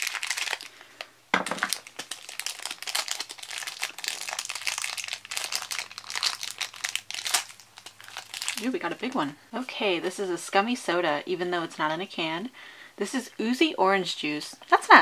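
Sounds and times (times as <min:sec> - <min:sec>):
plastic wrapper crinkling: 0:00.0 - 0:09.4.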